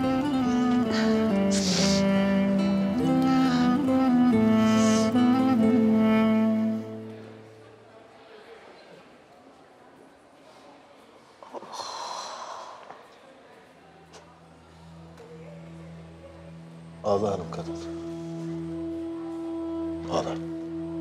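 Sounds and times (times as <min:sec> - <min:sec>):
sustained string chords: 0:00.0 - 0:07.8.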